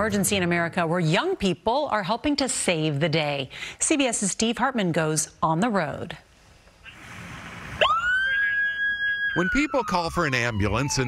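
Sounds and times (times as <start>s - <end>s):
faint hiss and rumble: 5.7s - 7.8s
ambulance siren wail: 7.8s - 11.0s.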